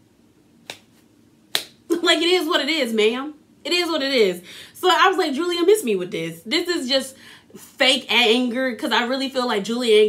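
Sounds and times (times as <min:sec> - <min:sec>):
hands snapping or clapping: 0:00.6 - 0:01.8.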